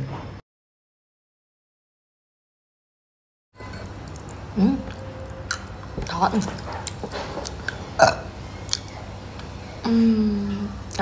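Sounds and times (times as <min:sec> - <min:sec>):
woman burping: 0:08.0 - 0:08.3.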